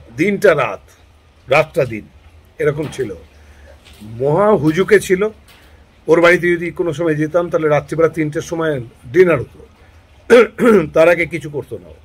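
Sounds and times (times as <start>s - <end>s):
sharp breathy burst: 3.3s - 3.9s.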